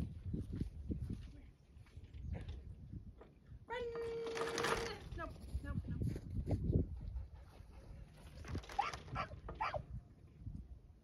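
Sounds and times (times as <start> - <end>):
dog barking: 8.8 - 9.8.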